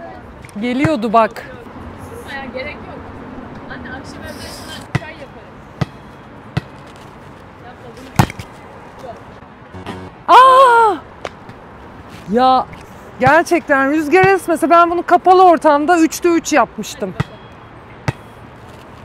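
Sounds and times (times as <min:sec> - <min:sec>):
loud short shout: 0:10.3 - 0:11.0.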